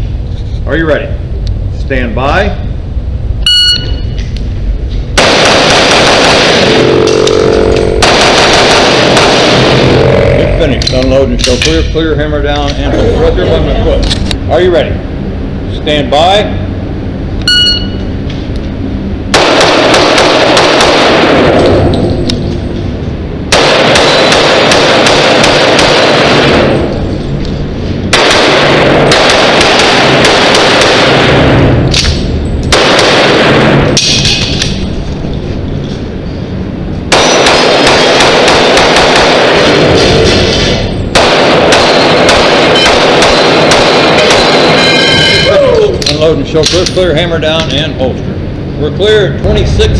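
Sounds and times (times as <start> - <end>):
electronic shot timer beep: 3.4 - 4.2, 17.4 - 18.0
pistol shots in fast strings: 5.2 - 6.8, 8.0 - 9.8, 19.3 - 21.5, 23.5 - 26.8, 28.1 - 31.3, 37.1 - 39.7, 41.1 - 44.8.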